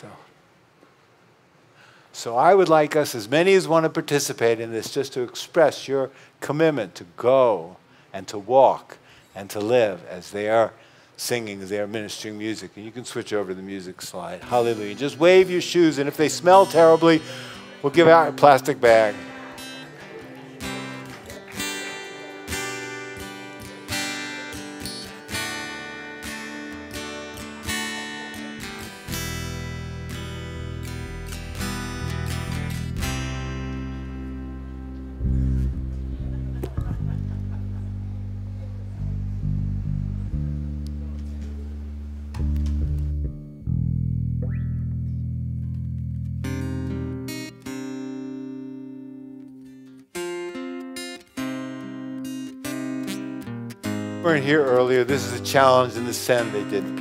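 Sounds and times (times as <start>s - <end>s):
acoustic guitar picked: 14.0s - 43.8s, 44.4s - 57.0s
held low bass notes: 29.2s - 47.1s.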